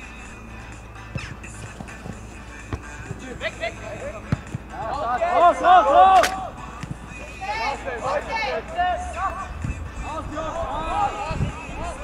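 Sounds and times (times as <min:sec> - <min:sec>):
football kicked with thud: 0:04.2 - 0:04.7
people shouting: 0:04.7 - 0:06.6, 0:07.3 - 0:09.5, 0:10.1 - 0:12.0.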